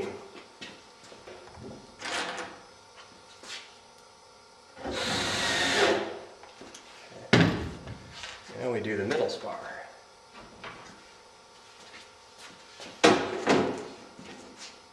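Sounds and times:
power screwdriver driving screw: 4.9s - 6.0s.

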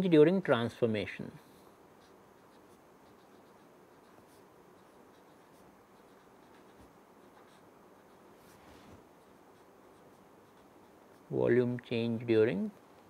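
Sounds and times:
low room hiss: 0.0s - 13.0s
marker pen scratching on paper: 2.0s - 11.4s.

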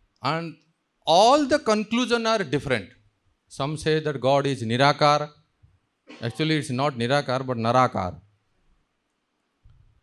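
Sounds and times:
man lecturing: 0.2s - 5.4s, 6.2s - 8.3s.

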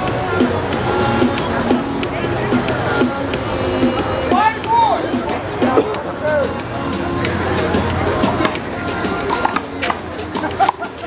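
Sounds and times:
background music: 0.0s - 11.0s
crowd chatter: 0.0s - 11.0s.

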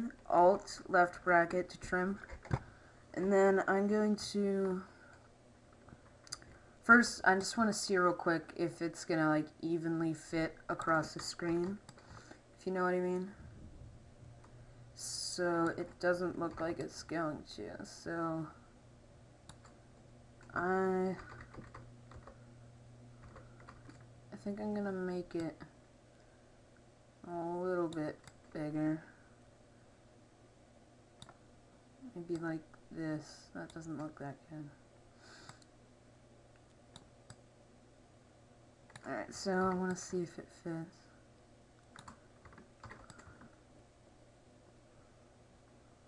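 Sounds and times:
low steady hum: 0.0s - 46.0s
computer keyboard tapping: 21.1s - 22.4s, 42.0s - 43.4s.

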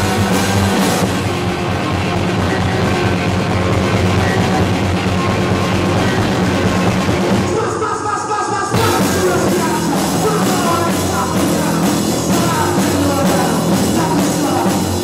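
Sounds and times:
electric guitar: 0.0s - 7.8s, 8.7s - 15.0s
drum kit: 0.0s - 15.0s
person singing: 2.2s - 15.0s.

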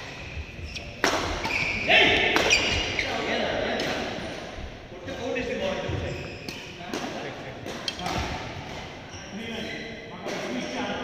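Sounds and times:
racket hitting shuttlecock: 0.0s - 3.0s.

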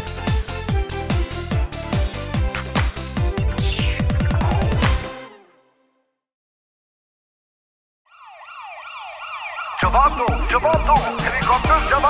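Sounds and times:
song with heavy beat: 1.3s - 5.1s
cartoon siren sound effect: 3.3s - 4.8s, 8.1s - 10.6s.

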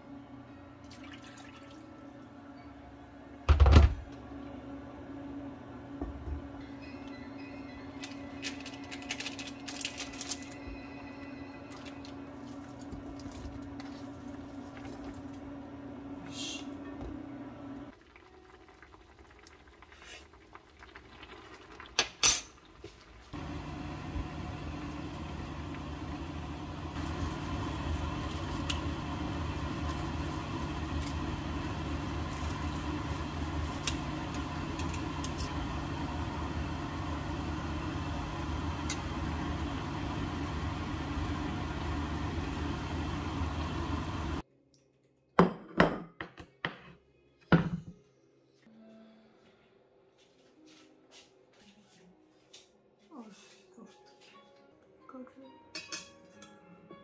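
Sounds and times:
low hum: 23.4s - 44.4s.

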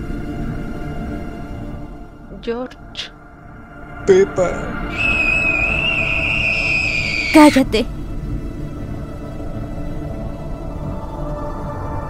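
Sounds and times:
long high-pitched scream: 4.9s - 7.6s.

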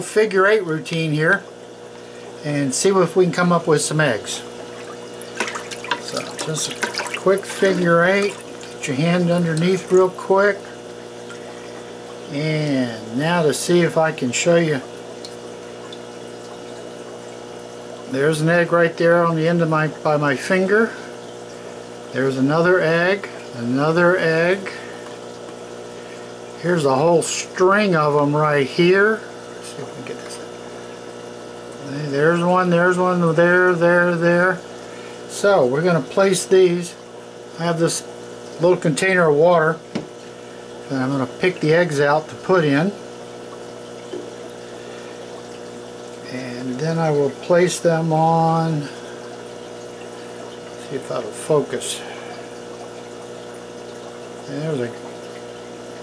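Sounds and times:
aquarium equipment hum: 0.0s - 56.0s
trickling water: 0.0s - 56.0s
faint watery hiss: 46.2s - 53.1s.

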